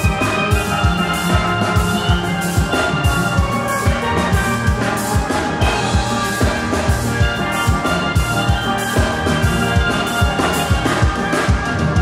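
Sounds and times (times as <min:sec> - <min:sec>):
steel pans playing: 0:00.0 - 0:12.0.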